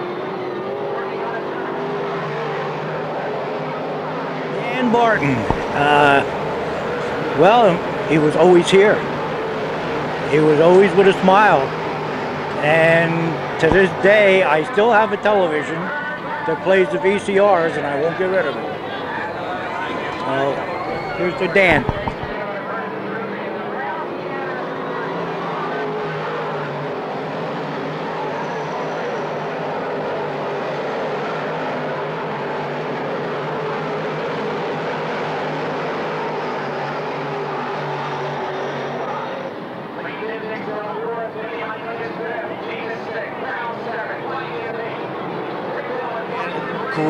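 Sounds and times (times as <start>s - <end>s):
race car engines roaring: 0.0s - 47.0s
man talking: 4.6s - 6.3s, 7.1s - 9.1s, 10.3s - 11.7s, 12.6s - 18.7s, 20.1s - 22.4s, 46.2s - 47.0s.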